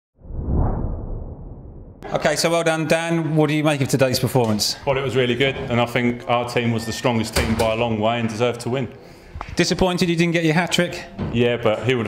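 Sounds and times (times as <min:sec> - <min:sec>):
whoosh with deep rumble: 0:00.2 - 0:02.0.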